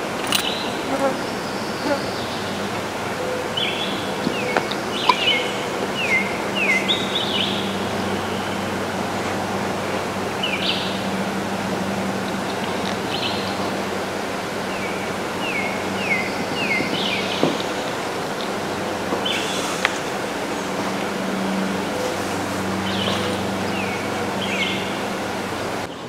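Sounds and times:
steady background hiss: 0.0 - 26.0
songbird whistling: 1.3 - 8.7.

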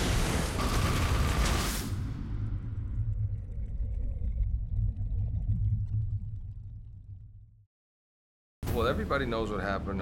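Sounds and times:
deep low rumble: 2.4 - 7.6.

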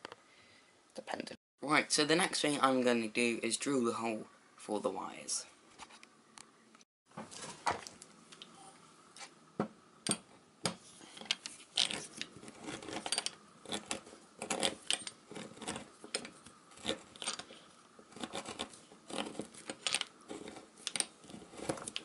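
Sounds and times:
hand drill scraping wood: 11.0 - 22.0.

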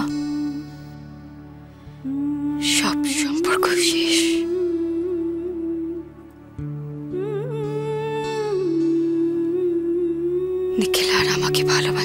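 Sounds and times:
wordless hummed melody: 0.0 - 12.0.

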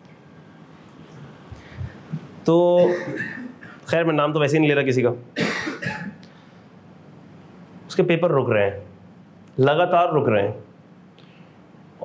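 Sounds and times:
man coughing: 2.8 - 3.8, 5.4 - 6.2.

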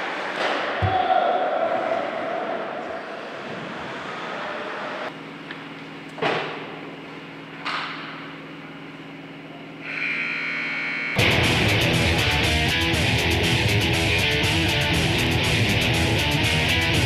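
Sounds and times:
scoreboard buzzer: 9.8 - 11.6.

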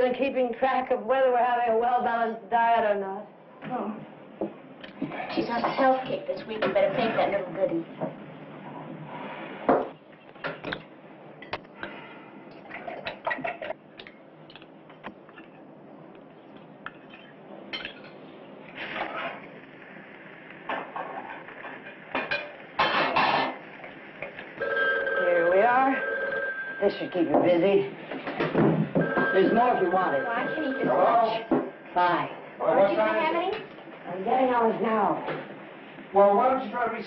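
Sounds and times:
dishes and cutlery clinking: 16.9 - 18.2.

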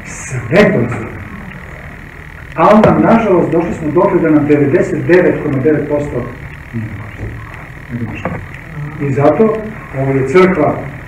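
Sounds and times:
man hesitation sounds: 0.0 - 11.0.

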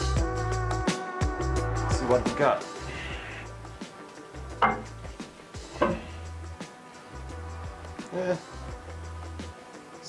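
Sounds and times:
background music with bass line: 0.0 - 10.0
sharp metal knocks: 4.6 - 5.0, 5.8 - 6.2.

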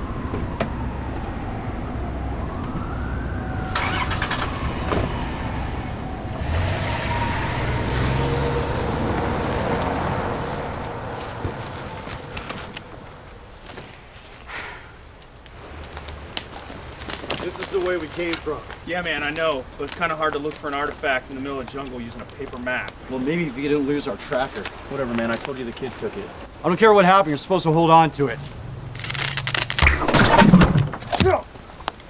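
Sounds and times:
van driving off: 0.0 - 13.7.

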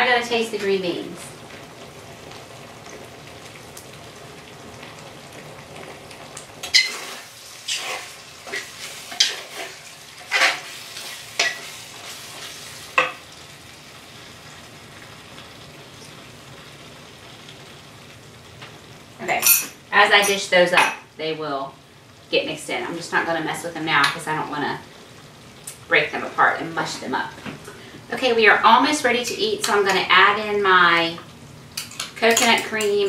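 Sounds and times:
food sizzling in a skillet: 0.0 - 33.0
spatula scraping a metal pan: 6.6 - 11.8.

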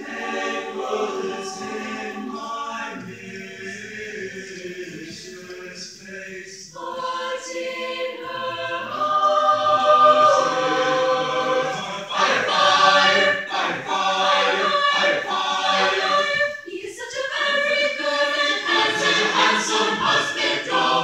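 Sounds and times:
mixed-voice choir singing: 0.0 - 21.0.

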